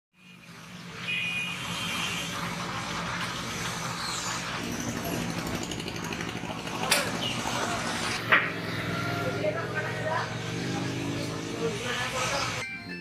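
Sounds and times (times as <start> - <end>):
street noise: 0.2 - 13.0
vehicle engine running: 4.5 - 12.6.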